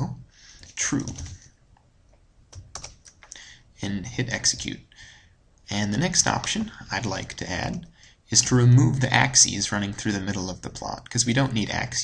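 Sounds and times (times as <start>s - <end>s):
computer keyboard keystrokes: 0.6s - 1.4s, 2.5s - 3.4s.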